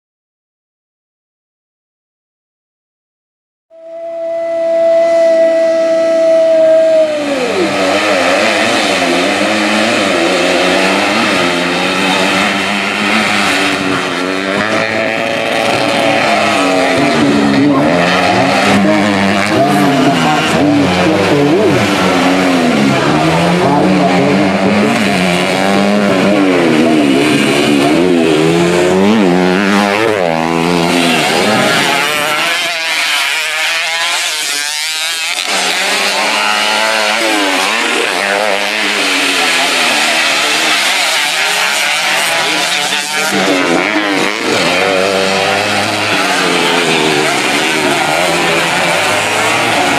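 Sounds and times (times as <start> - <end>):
racing motorcycle engines: 3.8 - 49.9.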